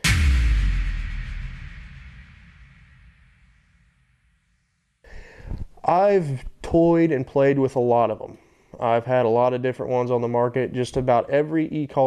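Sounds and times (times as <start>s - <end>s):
deep booming impact: 0.0s - 4.7s.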